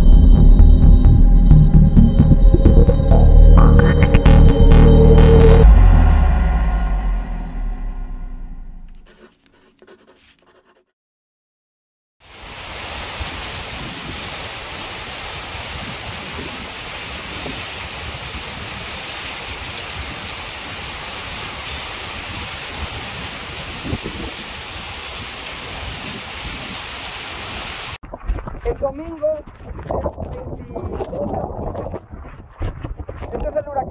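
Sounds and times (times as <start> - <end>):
torrential rain pouring: 12.2 - 28.0.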